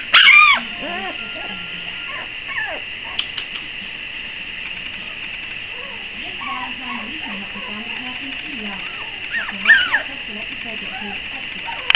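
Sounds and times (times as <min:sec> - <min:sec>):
puppy whimpering: 0:00.0 - 0:03.6, 0:05.0 - 0:10.1, 0:10.8 - 0:11.9.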